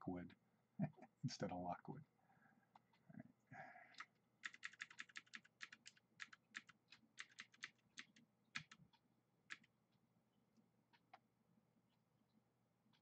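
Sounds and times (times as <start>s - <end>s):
keyboard keys clicking: 4.4s - 8.8s, 9.5s - 9.7s.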